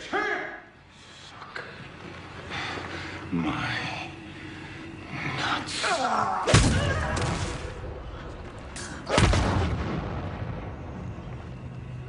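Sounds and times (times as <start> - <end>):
low steady drone: 0.0 - 12.0.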